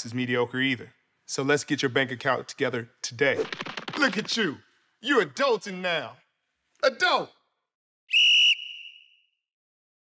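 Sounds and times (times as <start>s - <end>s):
short high whistle note: 8.1s - 9.4s.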